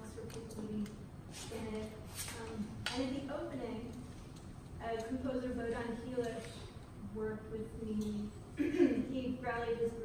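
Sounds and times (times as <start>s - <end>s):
woman talking: 0.0s - 4.0s, 4.8s - 10.0s.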